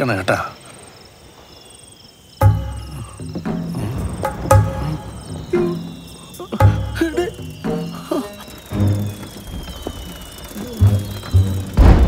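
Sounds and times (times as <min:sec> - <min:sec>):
crickets chirping: 0:00.0 - 0:12.0
film score: 0:00.0 - 0:12.0.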